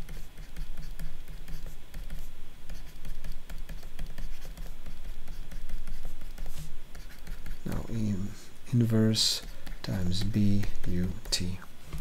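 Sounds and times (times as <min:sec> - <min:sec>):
stylus tapping and scratching: 0:00.0 - 0:08.2, 0:09.0 - 0:12.0
low steady hum: 0:00.0 - 0:12.0.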